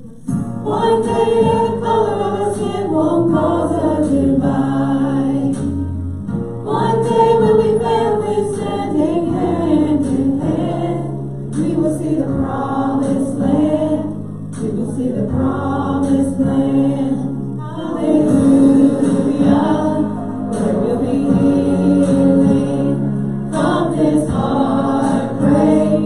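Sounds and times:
recorded backing track: 0:00.0 - 0:26.0
singers singing gospel song: 0:00.0 - 0:26.0.

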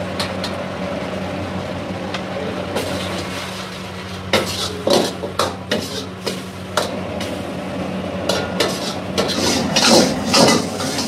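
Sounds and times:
metal ladle scraping a wok: 0:02.8 - 0:07.4, 0:08.3 - 0:11.0
food sizzling: 0:02.8 - 0:11.0.

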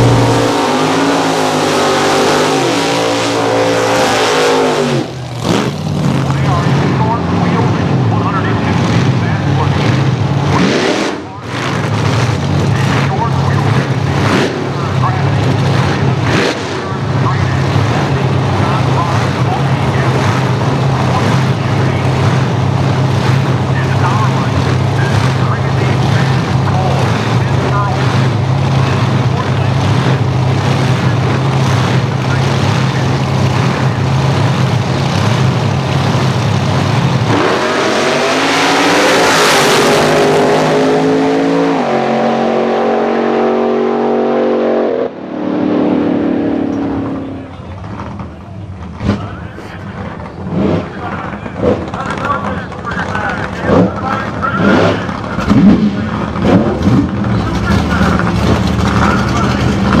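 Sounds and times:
falling tone: 0:00.0 - 0:03.8
drag car engines revving: 0:00.0 - 1:00.0
voices: 0:06.2 - 0:09.9, 0:12.6 - 0:14.0, 0:14.7 - 0:16.1, 0:16.8 - 0:22.3, 0:23.6 - 0:34.2, 0:46.6 - 0:56.6, 0:57.2 - 1:00.0.

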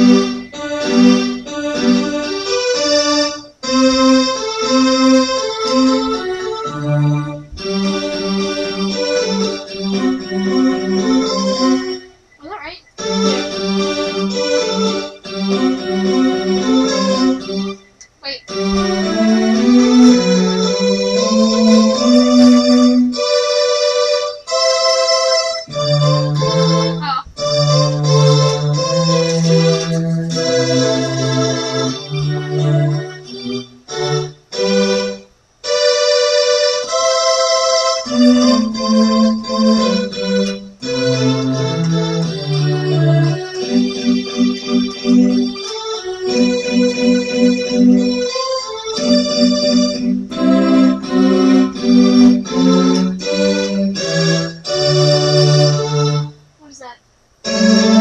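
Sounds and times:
electronic keyboard duet: 0:00.0 - 0:58.0.

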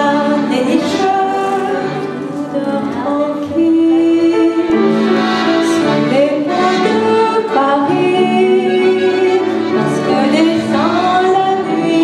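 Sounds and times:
accordion: 0:00.0 - 0:12.0
piano: 0:00.0 - 0:12.0
woman singing: 0:00.0 - 0:12.0.

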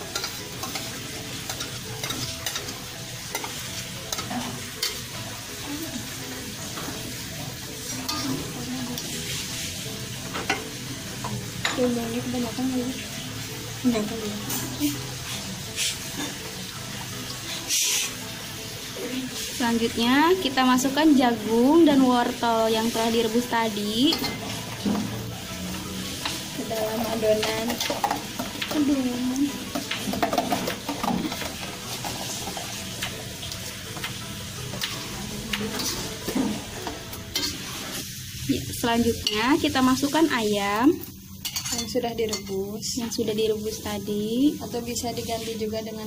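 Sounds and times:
hot pan hissing: 0:00.0 - 0:46.0
spatula scraping a wok: 0:14.5 - 0:16.5, 0:17.5 - 0:18.2, 0:29.8 - 0:32.8, 0:35.7 - 0:38.5.

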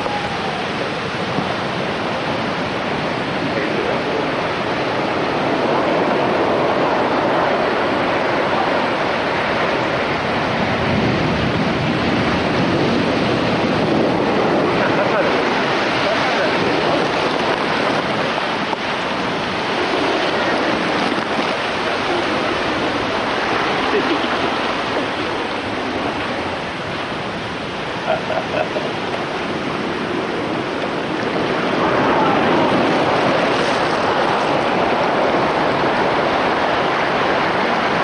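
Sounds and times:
waves breaking on shore: 0:00.0 - 0:38.0.

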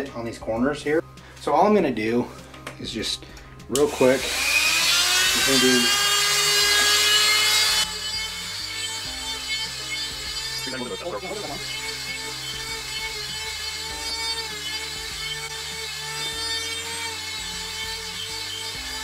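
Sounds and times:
background music: 0:00.0 - 0:19.0
rotary tool whining: 0:03.8 - 0:19.0.

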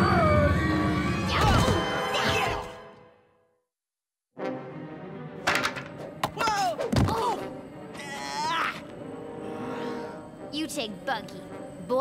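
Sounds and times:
cartoon music with gliding tones: 0:04.4 - 0:12.0.

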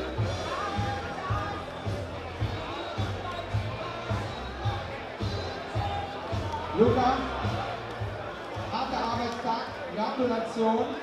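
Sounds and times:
thumping bass beat music: 0:00.0 - 0:09.3
men talking in echoing hall: 0:05.7 - 0:11.0.

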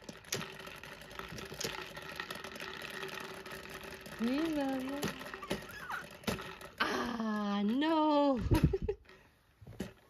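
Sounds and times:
balls rattling in plastic dome: 0:00.0 - 0:10.0
spinning top whirring: 0:00.0 - 0:10.0.

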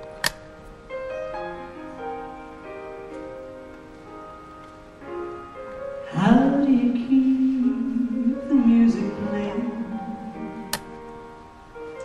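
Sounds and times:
slow soft keyboard music: 0:00.0 - 0:12.0
sharp click: 0:00.2 - 0:00.4.

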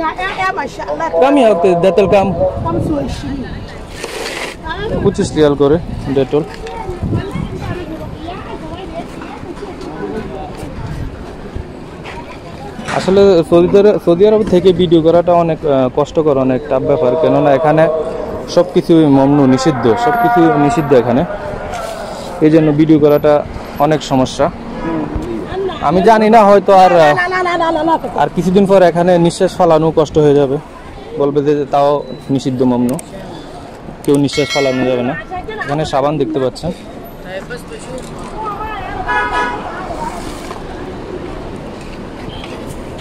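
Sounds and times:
street traffic noise: 0:00.0 - 0:43.0
vehicle horn honk: 0:01.0 - 0:03.0, 0:39.1 - 0:39.6
man calling out sing-song: 0:01.1 - 0:03.0.

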